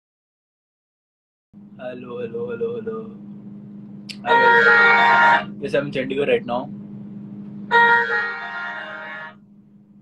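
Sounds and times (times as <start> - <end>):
steady low hum: 1.6 - 10.0.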